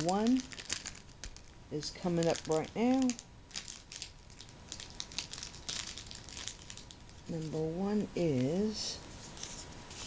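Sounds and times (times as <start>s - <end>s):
plastic wrapping crinkling: 0.0s - 8.6s.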